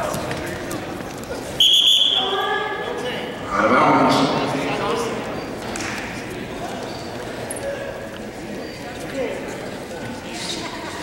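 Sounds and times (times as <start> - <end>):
referee's whistle blast: 1.6 - 2.3.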